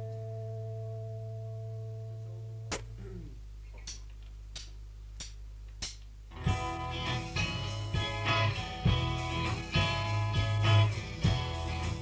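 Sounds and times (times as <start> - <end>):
low steady hum: 0.0 - 10.5.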